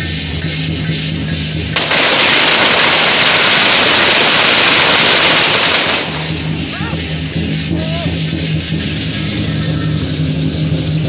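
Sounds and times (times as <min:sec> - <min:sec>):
firecrackers crackling: 0:01.7 - 0:08.4.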